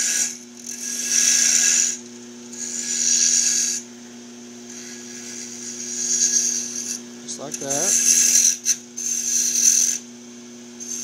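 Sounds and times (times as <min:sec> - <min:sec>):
gouge cutting spinning wood: 0:00.0 - 0:03.9, 0:04.7 - 0:10.0.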